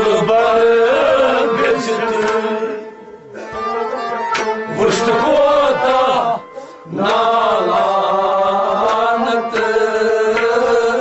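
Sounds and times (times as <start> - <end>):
men singing together: 0.0 - 3.9, 4.6 - 11.0.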